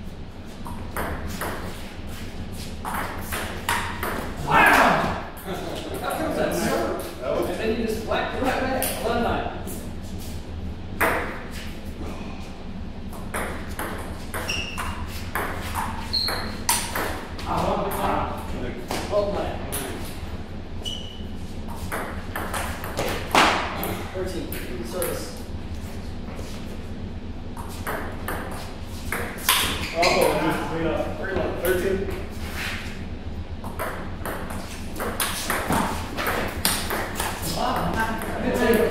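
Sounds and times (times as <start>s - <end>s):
ping pong ball hitting paddles: 2.8s - 4.8s, 11.0s - 11.4s, 13.1s - 17.3s, 21.9s - 24.0s, 27.6s - 30.3s, 33.6s - 38.9s
ping pong ball bouncing on table: 13.2s - 17.2s, 33.7s - 38.4s.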